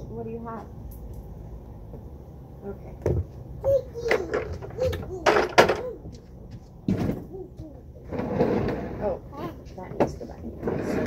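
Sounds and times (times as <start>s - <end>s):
small child's voice: 3.6s - 6.2s, 7.2s - 7.9s, 9.3s - 9.7s
plastic furniture knocks: 6.8s - 7.3s
plastic furniture scraping: 6.8s - 7.4s, 8.0s - 11.0s.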